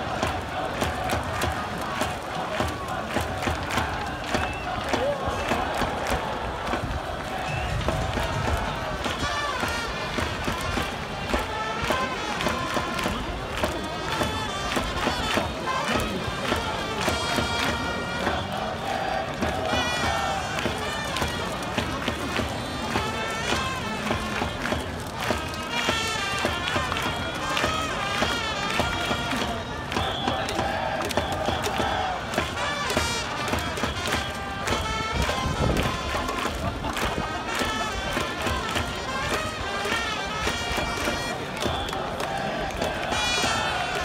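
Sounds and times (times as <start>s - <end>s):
crowd cheering and chanting: 0.0s - 44.0s
sharp rhythmic beats: 0.0s - 44.0s
trumpets: 0.0s - 44.0s.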